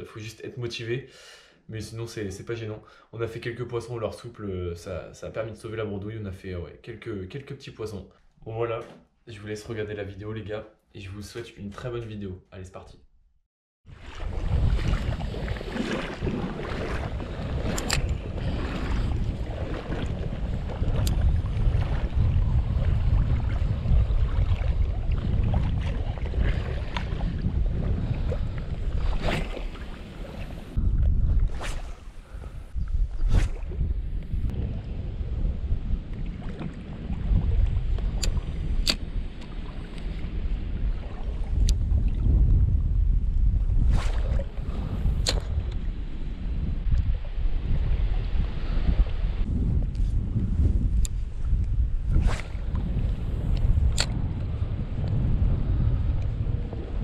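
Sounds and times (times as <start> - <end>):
gusty wind on microphone: 13.9 - 57.0
sharp clicks: 38.2 - 39.0, 45.2 - 45.5, 54.0 - 54.2.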